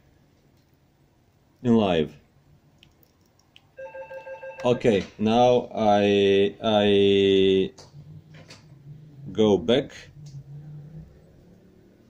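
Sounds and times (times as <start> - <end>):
electronic tone: 3.8 - 4.8.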